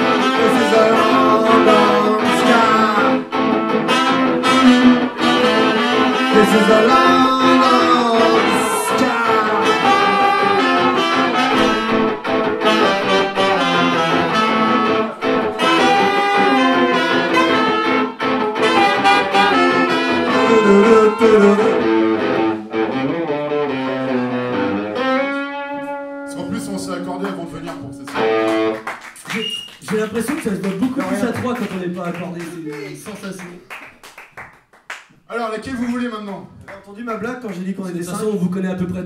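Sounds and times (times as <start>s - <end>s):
unplugged punk band playing: 0.0s - 31.6s
guitar: 0.0s - 34.1s.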